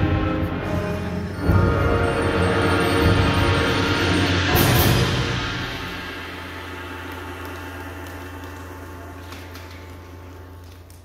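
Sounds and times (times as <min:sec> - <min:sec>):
cymbal crash: 0:01.6 - 0:08.4.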